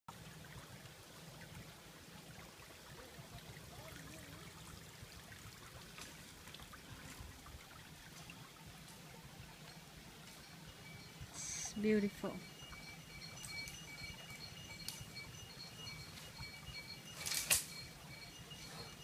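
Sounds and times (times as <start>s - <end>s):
trickle of running water: 0.1s - 19.0s.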